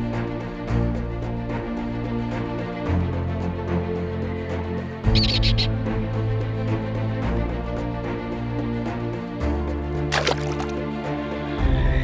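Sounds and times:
background music: 0:00.0 - 0:12.0
high sharp kestrel calls: 0:05.0 - 0:05.9.

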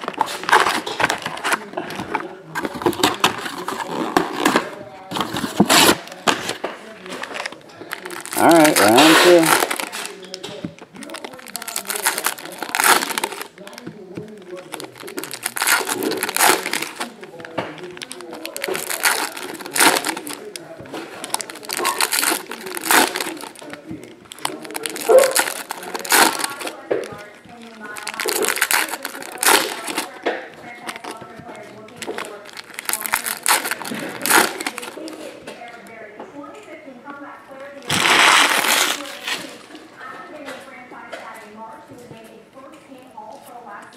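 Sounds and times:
foil wrappers crinkling and tearing: 0:00.0 - 0:35.9, 0:37.7 - 0:40.5.

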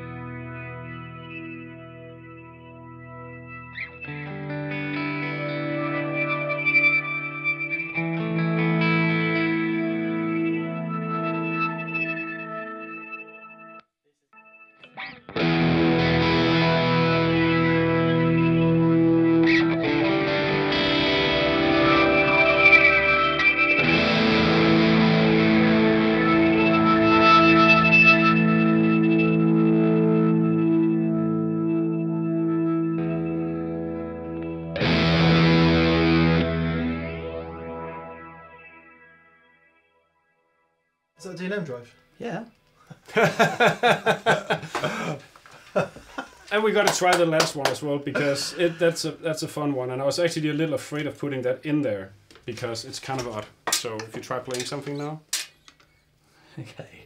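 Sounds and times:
overdriven electric guitar chords: 0:00.0 - 0:13.8, 0:14.4 - 0:40.0, 0:43.2 - 0:45.2.

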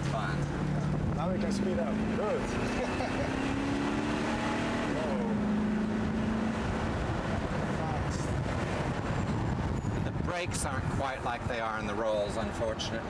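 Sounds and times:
car engine hum: 0:00.0 - 0:13.0
road and wind noise: 0:00.0 - 0:13.0.

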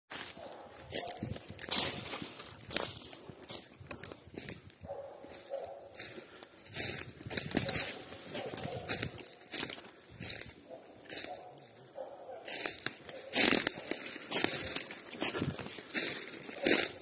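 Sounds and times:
footsteps through undergrowth: 0:00.1 - 0:17.0.

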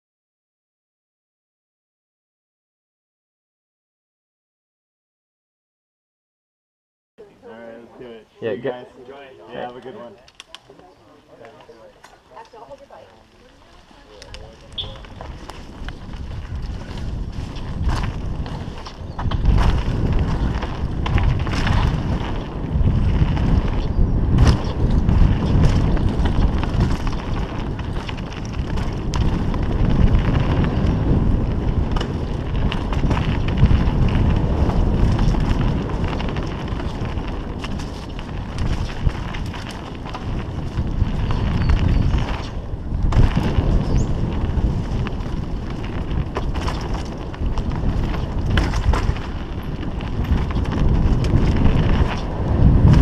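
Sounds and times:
faint voices: 0:07.2 - 0:16.2
tyres on dirt: 0:09.5 - 0:53.0
bike clicks and rattles: 0:10.2 - 0:10.8, 0:11.4 - 0:53.0
wind on microphone: 0:13.8 - 0:53.0.

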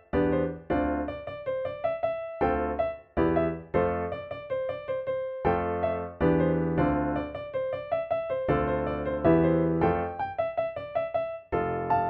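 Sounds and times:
upbeat solo piano: 0:00.0 - 0:12.0.

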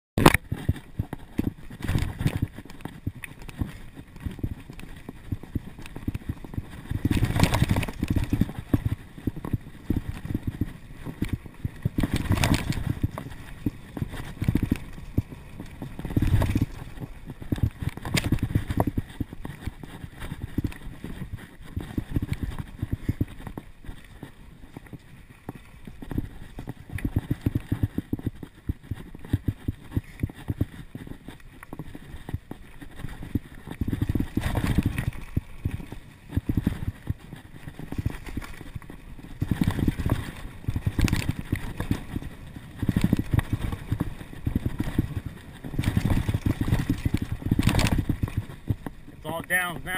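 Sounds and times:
bike rattling over bumpy trail: 0:00.2 - 0:49.9.

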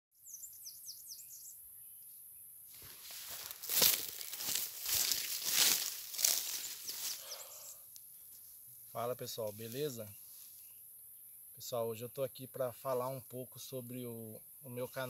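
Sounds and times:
bird chirps: 0:00.2 - 0:02.5, 0:06.5 - 0:08.5
footsteps in dry leaves: 0:02.7 - 0:07.5.

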